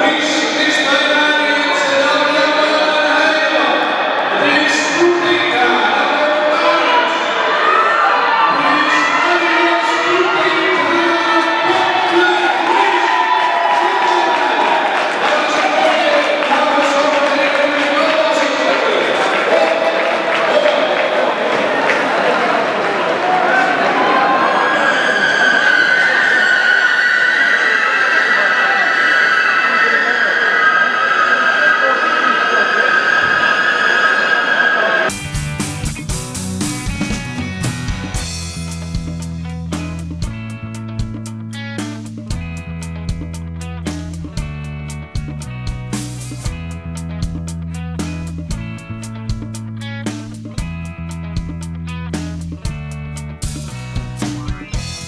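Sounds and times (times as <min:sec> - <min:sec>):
music over public address: 0:00.0 - 0:22.6, 0:23.2 - 0:55.0
crowd noise: 0:00.0 - 0:55.0
music with guitar and drums: 0:35.1 - 0:55.0.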